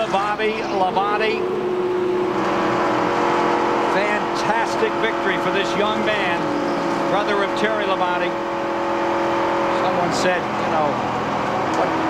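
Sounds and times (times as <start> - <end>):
race car engine drone: 0.0 - 12.0.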